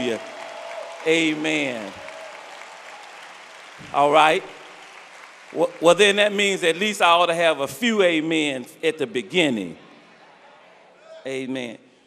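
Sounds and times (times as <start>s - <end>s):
congregation applauding: 0.0s - 7.7s.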